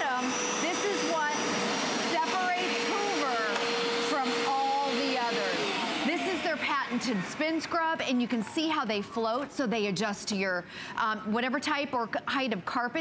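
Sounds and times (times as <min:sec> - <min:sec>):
carpet cleaner motor hum: 0:00.0 - 0:07.8.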